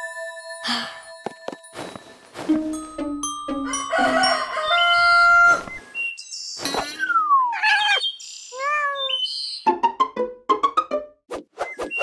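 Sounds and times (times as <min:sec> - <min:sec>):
chime-like musical phrase: 0:00.0 - 0:05.5
rooster crowing: 0:03.7 - 0:05.7
birds chirping: 0:04.4 - 0:09.7.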